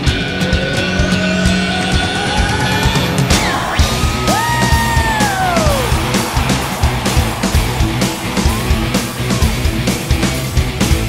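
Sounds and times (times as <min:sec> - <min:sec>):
steady drum beat: 0:03.3 - 0:11.0.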